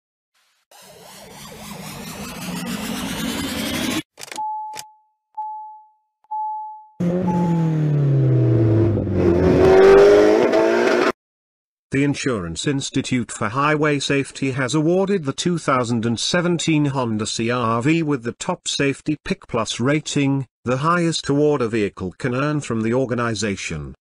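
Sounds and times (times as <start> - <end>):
engine-like sweep: 0.7 - 4.1
rising swell effect: 0.7 - 4.1
short beeps: 4.3 - 7.7.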